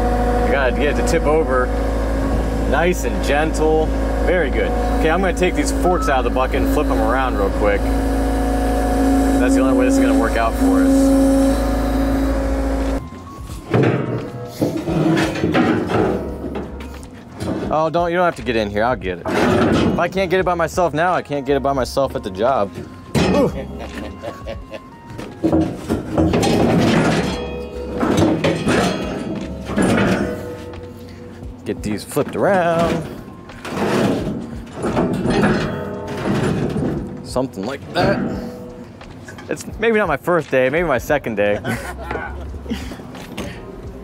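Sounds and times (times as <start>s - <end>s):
diesel engine humming: 0.0s - 44.0s
steel tines clanking and sliding: 0.4s - 20.6s, 22.7s - 39.8s
music: 13.0s - 44.0s.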